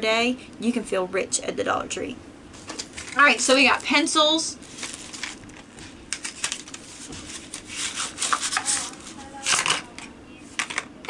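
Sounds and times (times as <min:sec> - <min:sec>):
rustling and scraping: 0:04.6 - 0:10.8
pencils knocking together: 0:09.4 - 0:10.9.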